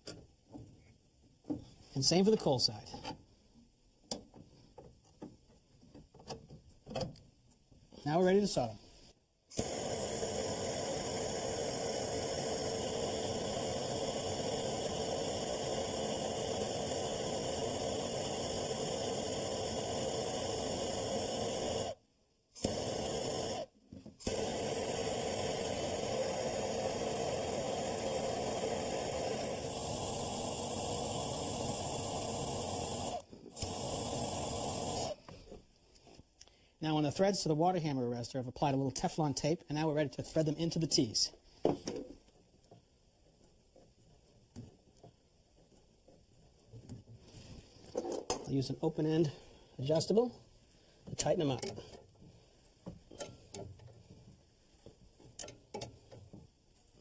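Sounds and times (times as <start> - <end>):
plumbing torch hissing: 8.0 - 35.6, 47.2 - 53.6.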